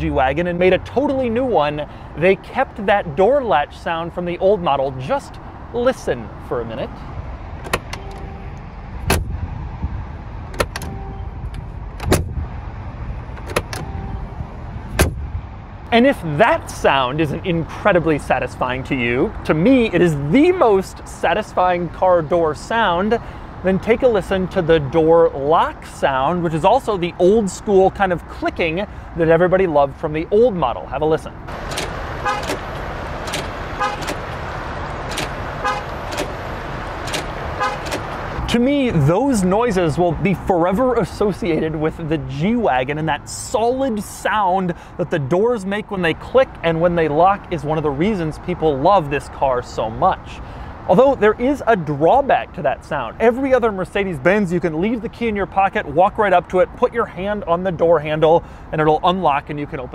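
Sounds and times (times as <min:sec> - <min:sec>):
car door latch clicking: 0:07.6 - 0:08.3, 0:09.0 - 0:09.3, 0:10.5 - 0:12.3, 0:13.3 - 0:14.0, 0:15.0 - 0:15.2, 0:31.5 - 0:38.3.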